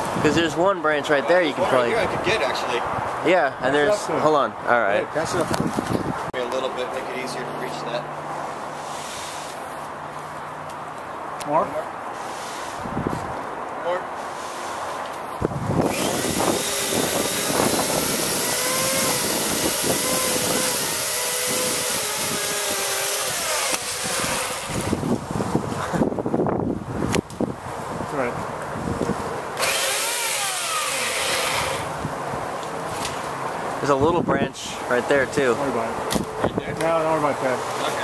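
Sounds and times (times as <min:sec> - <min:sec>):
chainsaw cutting branch: 0:15.8 - 0:25.1, 0:29.6 - 0:32.0.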